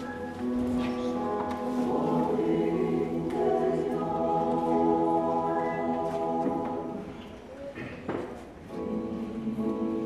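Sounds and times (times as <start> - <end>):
mixed choir singing chords: 0.0 - 7.2, 8.7 - 10.0.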